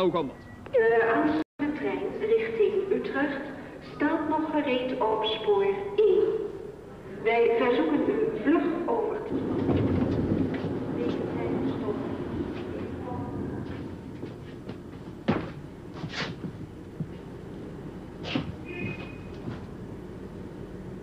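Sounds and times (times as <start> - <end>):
train carriage rumble: 6.0 - 21.0.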